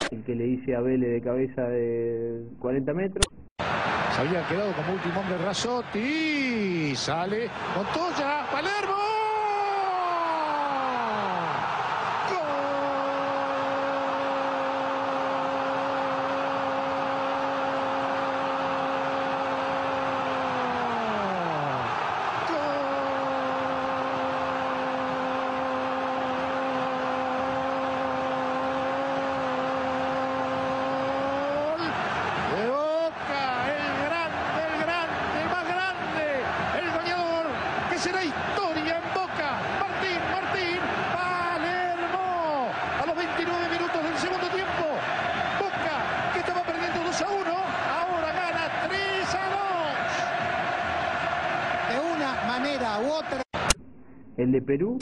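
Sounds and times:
stadium crowd roaring: 0:03.6 - 0:53.8.

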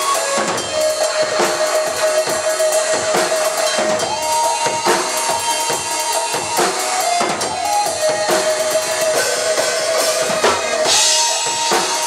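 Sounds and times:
drum and bass backing track: 0:00.0 - 0:12.0
drum kit played fast: 0:00.0 - 0:12.0.

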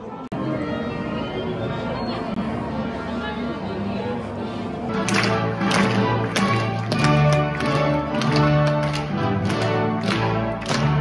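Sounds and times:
orchestra playing a carol: 0:00.0 - 0:11.0.

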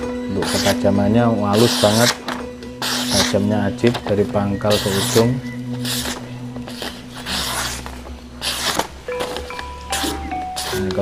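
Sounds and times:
background music: 0:00.0 - 0:11.0
knife slicing paper: 0:00.4 - 0:00.8, 0:01.5 - 0:11.0.

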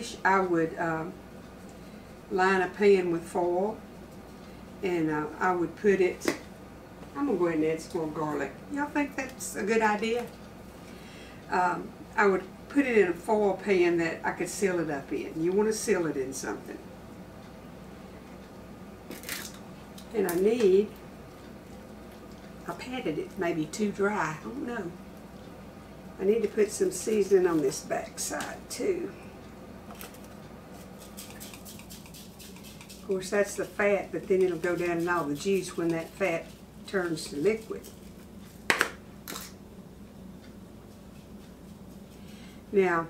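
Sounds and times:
faint kitchen room tone: 0:00.0 - 0:43.0
seasoning shaken: 0:30.7 - 0:38.2.

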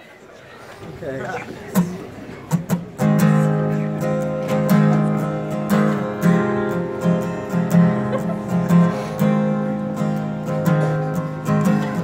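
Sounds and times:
acoustic guitar strumming: 0:01.7 - 0:12.0.

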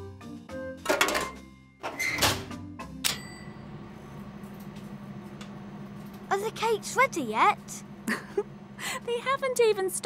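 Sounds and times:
bell ding: 0:03.0 - 0:03.6.

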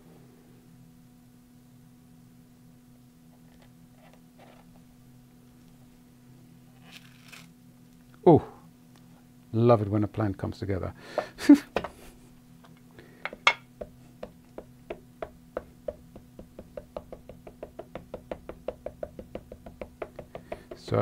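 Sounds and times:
ink pad tapping on stamp: 0:13.3 - 0:21.0.

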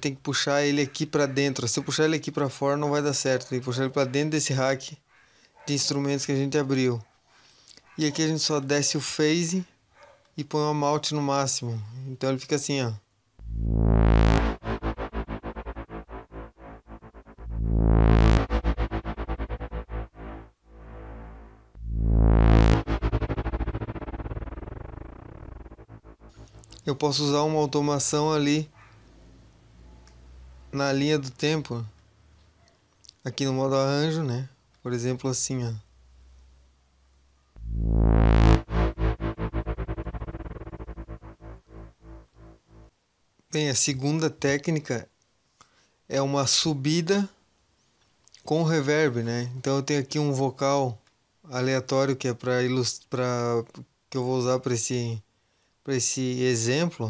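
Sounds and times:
pulsing synth note with reverb: 0:13.4 - 0:27.2, 0:37.6 - 0:42.9.

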